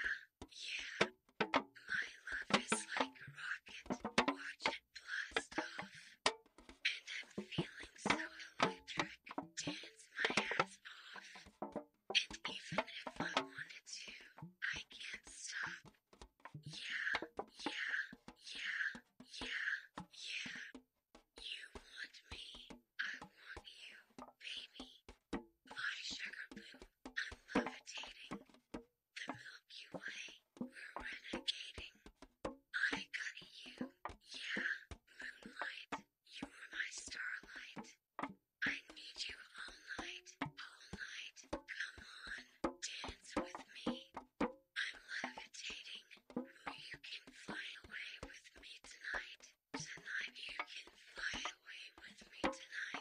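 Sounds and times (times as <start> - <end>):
close-miked whispering: 0.0 - 1.0, 1.6 - 6.2, 6.9 - 11.4, 12.2 - 15.8, 16.6 - 20.7, 25.7 - 28.4, 32.8 - 37.9, 38.6 - 44.0, 44.8 - 53.0.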